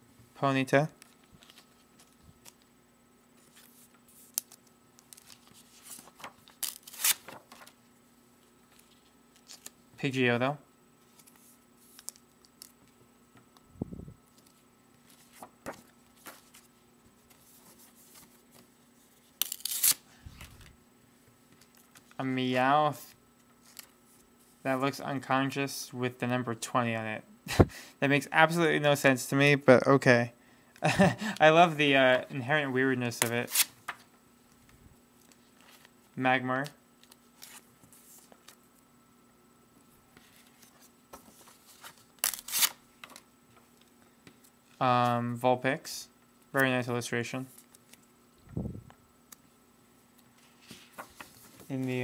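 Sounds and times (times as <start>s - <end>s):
faint room hiss: 0.0s - 52.0s
card sheets rustling: 3.4s - 7.8s, 14.3s - 20.7s, 37.0s - 38.6s, 40.1s - 44.5s, 50.3s - 52.0s.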